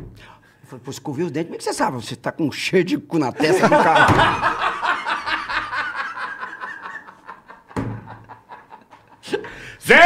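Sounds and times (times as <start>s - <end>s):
men laughing: 3.4s - 9.7s.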